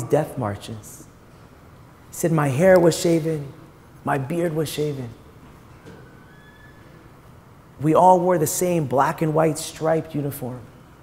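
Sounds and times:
room noise through microphone: 0.0 - 11.0
faint thin whistle-like tone: 6.0 - 7.0.

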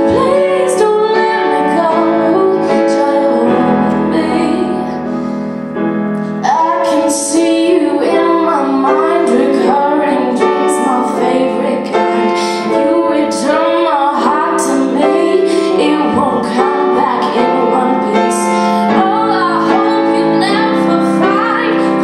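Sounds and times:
woman singing a slow ballad: 0.0 - 5.0, 6.2 - 22.0
grand piano accompaniment: 0.0 - 22.0.

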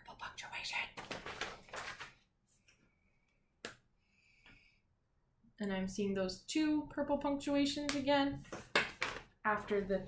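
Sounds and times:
paper rustling: 1.0 - 2.8.

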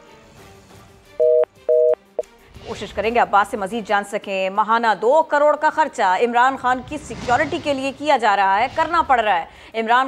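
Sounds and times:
soft background music: 0.0 - 6.9
two-tone electronic beeps: 1.2 - 2.0.

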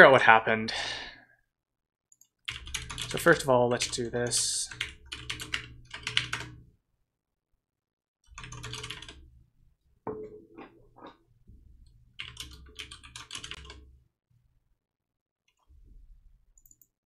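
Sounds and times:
typing on computer keyboard: 2.1 - 4.0, 4.7 - 6.6, 8.3 - 9.2, 12.2 - 13.9.

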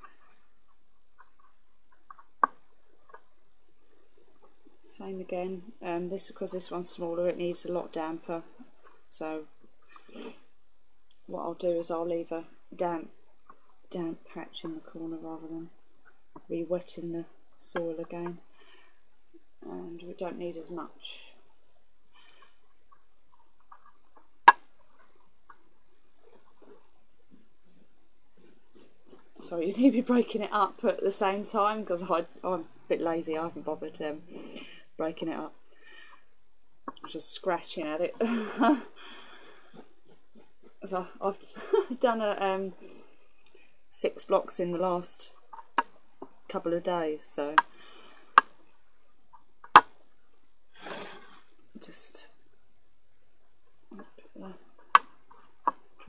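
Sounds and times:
faint scratching and rustling: 0.0 - 56.0.

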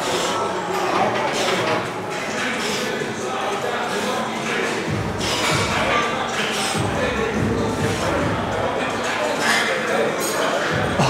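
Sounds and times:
people talking: 0.0 - 11.0
music playing: 4.5 - 11.0.

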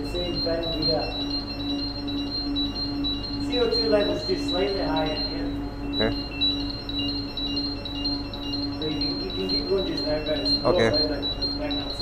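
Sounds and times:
gas alarm beeping: 0.0 - 12.0.

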